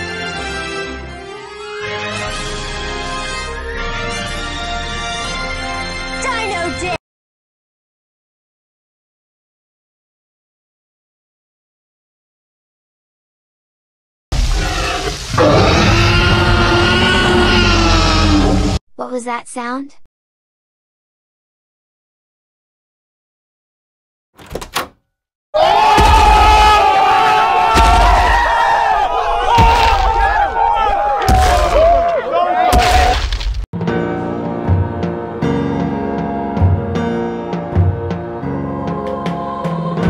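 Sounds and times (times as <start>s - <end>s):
dinosaur growling and roaring: 14.4s - 18.8s
crowd yelling battle cry: 25.6s - 33.2s
heavy booming hits: 25.9s - 26.8s, 27.7s - 28.6s
soundtrack music: 33.8s - 40.0s.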